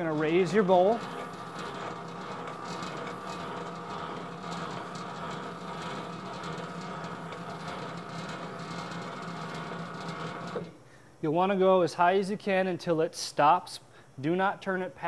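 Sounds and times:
steady background hum: 0.0 - 15.0.

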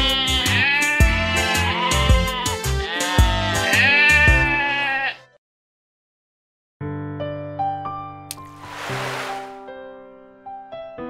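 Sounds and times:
cartoon sheep bleating: 0.0 - 5.3.

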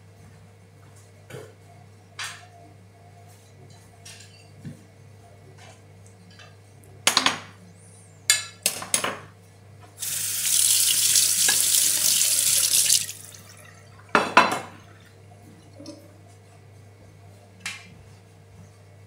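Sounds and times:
kitchen tap running: 10.0 - 14.7.

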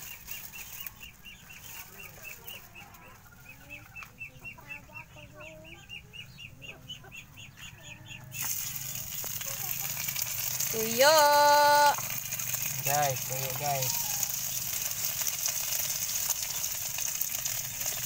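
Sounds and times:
fish frying in hot oil: 0.0 - 1.2, 8.3 - 18.0
chickens clucking: 0.0 - 18.0.

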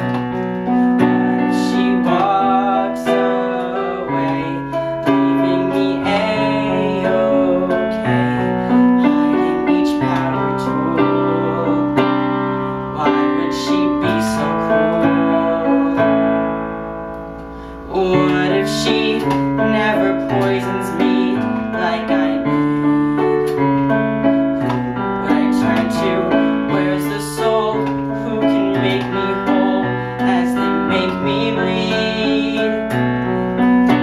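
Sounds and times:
piano accompaniment: 0.0 - 34.0
young man singing a ballad: 0.0 - 34.0.

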